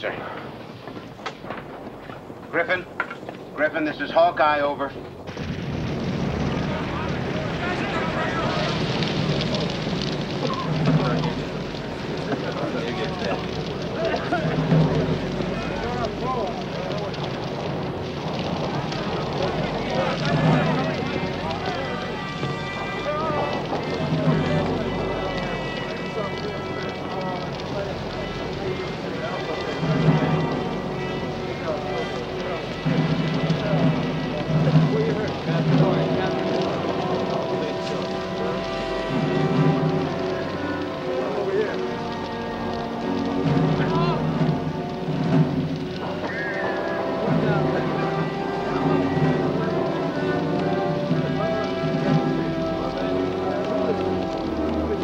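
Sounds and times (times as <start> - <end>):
indistinct voices: 0.0 - 55.0
low pulses: 4.8 - 55.0
music with long held tones: 5.9 - 55.0.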